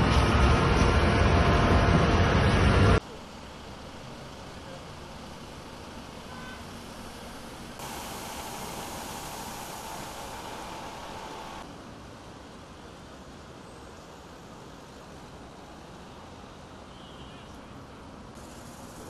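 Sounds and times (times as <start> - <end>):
traffic hum on busy road: 0.0 - 19.0
steady whine: 7.6 - 11.7.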